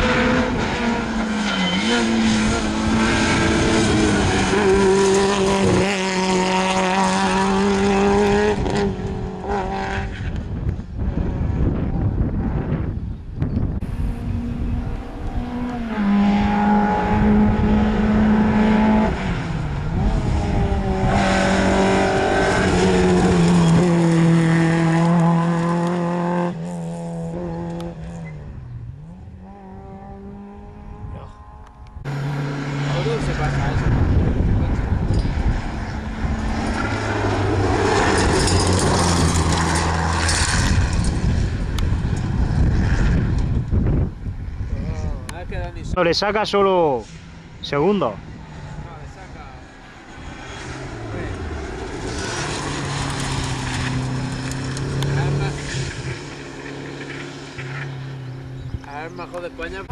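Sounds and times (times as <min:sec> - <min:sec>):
rally car engines revving: 0:00.0 - 0:13.0, 0:13.6 - 0:59.9.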